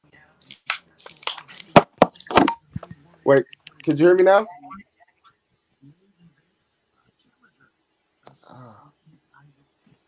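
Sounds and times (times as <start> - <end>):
headset microphone handling noise: 0.6 - 4.4.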